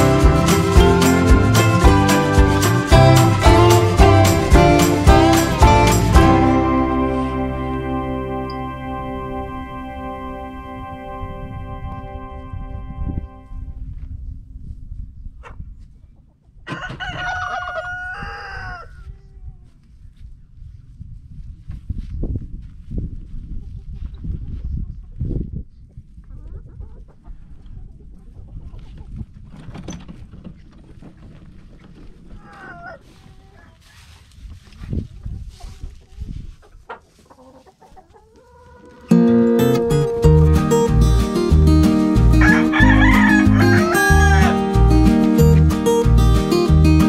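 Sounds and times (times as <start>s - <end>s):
low bumps: 0.0s - 10.6s
rooster crowing: 16.7s - 19.1s, 42.4s - 44.8s
hens clucking: 35.5s - 39.4s.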